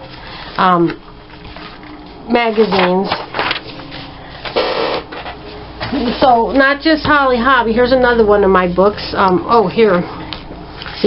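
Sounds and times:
pages rustling: 1.3s - 4.6s.

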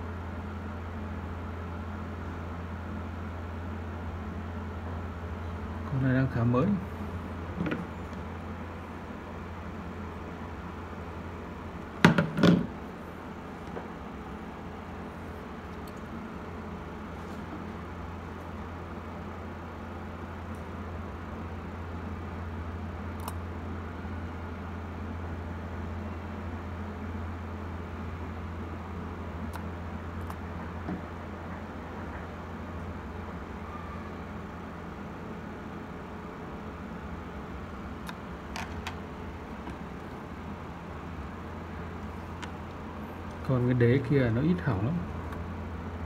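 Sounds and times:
steady low hum: 0.0s - 46.0s
plastic kettle knocks: 12.0s - 12.7s.

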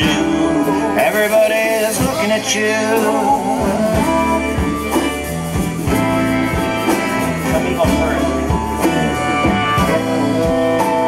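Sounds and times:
live band playing instrumental: 0.0s - 11.0s.

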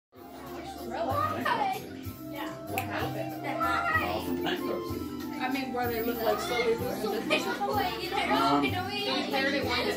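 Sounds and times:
children talking and exclaiming: 0.2s - 9.9s.

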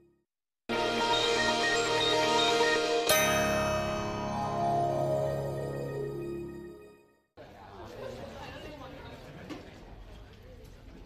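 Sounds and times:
chatter of many students: 7.4s - 11.0s.

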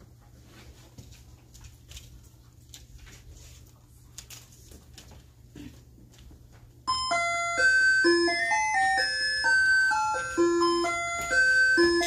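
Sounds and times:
electronic school bell chime melody: 6.9s - 12.0s.

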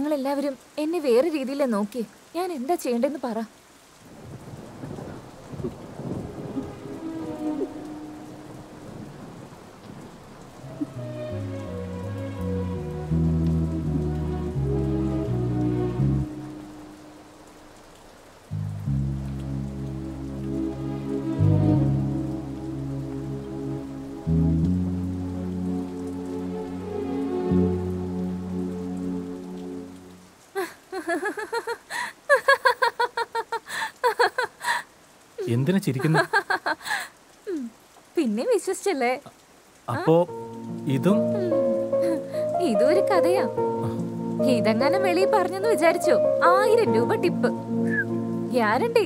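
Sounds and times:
rain: 0.0s - 49.0s
thunder: 4.1s - 11.0s
slow score of held chords: 6.0s - 17.7s, 18.4s - 30.3s, 40.3s - 49.0s.

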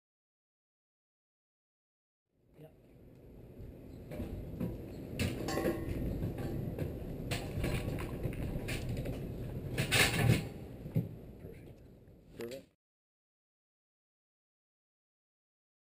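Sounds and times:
wheels rattling over metal ramp: 4.1s - 10.6s
sharp metal clanks: 5.2s - 6.1s.

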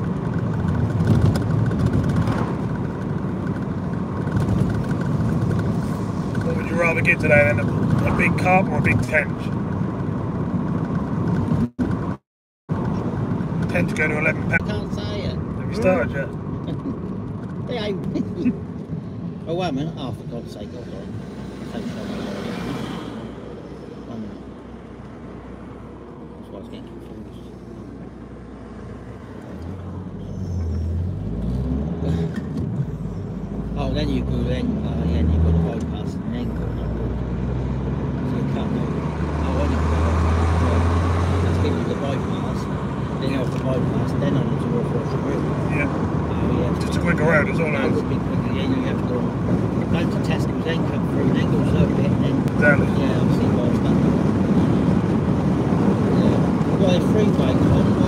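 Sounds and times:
car engine shifting gears: 0.0s - 58.0s
tyre and road noise: 0.0s - 58.0s.

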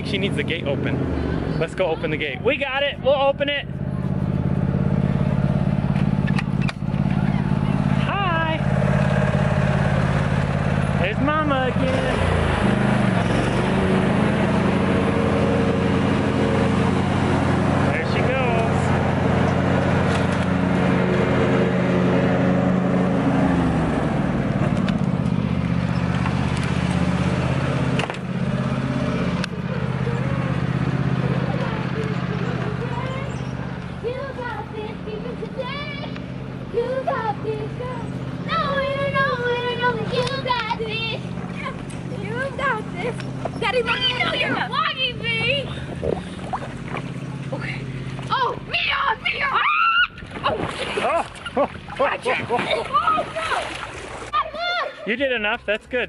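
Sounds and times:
petrol lawn mower engine: 0.0s - 49.4s.

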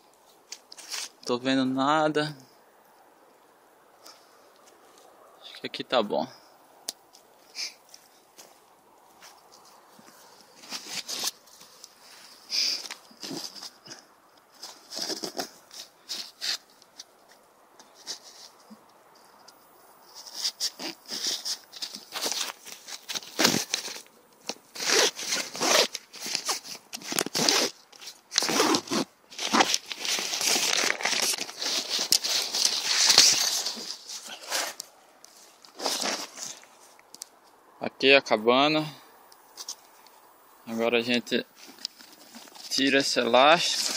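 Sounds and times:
nylon tent rustling: 7.5s - 17.1s, 20.0s - 36.9s, 41.4s - 43.9s
dry leaves rustling: 20.0s - 37.0s.

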